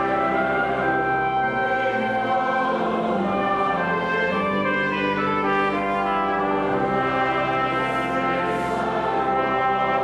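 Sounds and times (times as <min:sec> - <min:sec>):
pipe organ accompaniment: 0:00.0 - 0:10.0
trumpet melody: 0:00.0 - 0:10.0.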